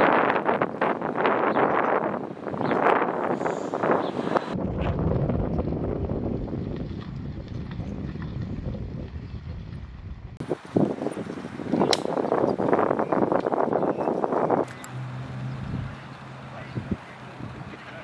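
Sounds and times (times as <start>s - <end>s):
wind noise on microphone: 0.0s - 18.0s
sharp click: 11.8s - 12.2s.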